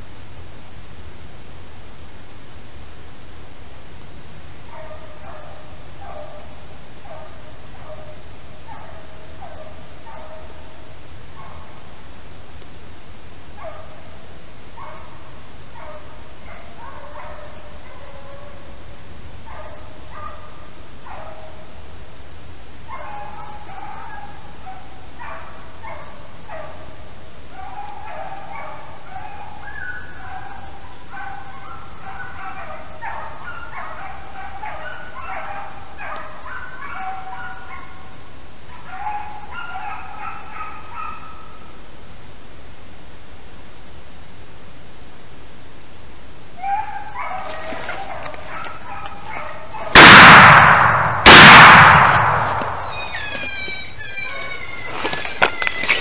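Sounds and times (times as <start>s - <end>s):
beagles baying: 4.7s - 11.9s, 14.8s - 18.8s, 22.9s - 41.8s, 46.6s - 56.0s.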